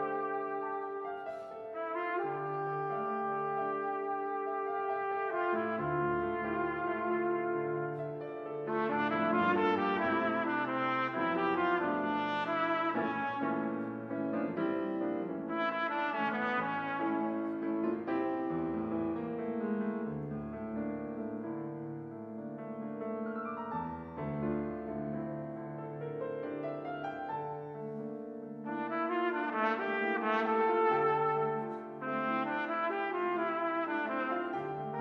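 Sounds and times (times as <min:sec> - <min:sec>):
trumpet playing bossa nova: 0:00.0 - 0:13.4, 0:15.5 - 0:17.3, 0:28.7 - 0:35.0
piano chords: 0:00.0 - 0:35.0.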